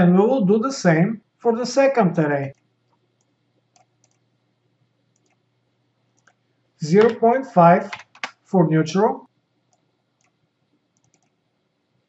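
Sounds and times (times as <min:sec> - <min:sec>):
person speaking: 0:00.0 - 0:02.6, 0:06.8 - 0:09.3
computer mouse clicks: 0:02.5 - 0:04.3, 0:05.1 - 0:05.4, 0:06.2 - 0:06.4, 0:07.9 - 0:08.4, 0:09.7 - 0:11.4.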